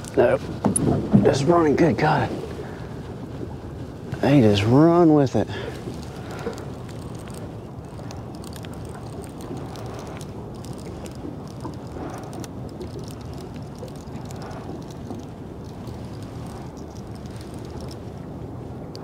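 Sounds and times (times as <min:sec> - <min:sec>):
wind buffeting microphone: 0:00.0 - 0:19.0
faint high ticks: 0:05.7 - 0:18.1.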